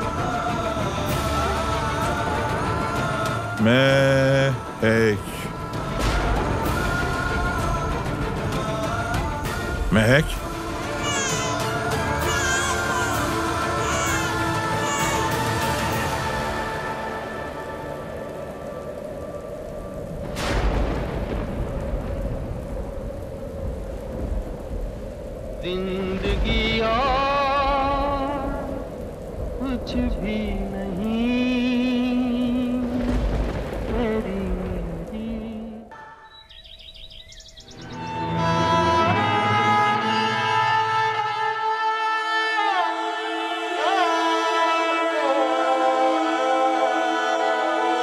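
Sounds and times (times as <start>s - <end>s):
thunder crack: 0.0s - 16.7s, 17.4s - 36.0s
heavy rain pouring: 0.0s - 48.0s
background music melody: 37.5s - 48.0s.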